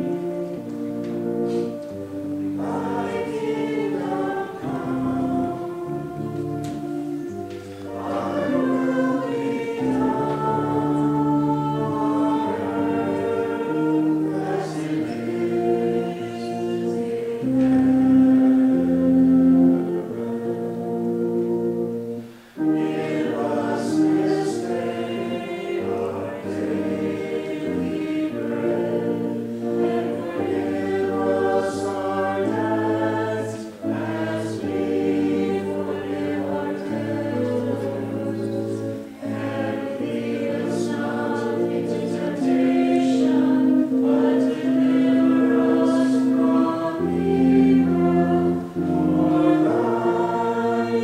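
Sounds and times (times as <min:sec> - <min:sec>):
church choir singing: 0:00.0 - 0:51.0.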